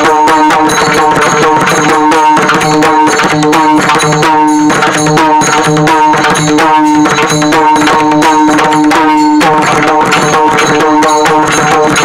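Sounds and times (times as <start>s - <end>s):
barrel drum playing fast: 0.0s - 12.0s.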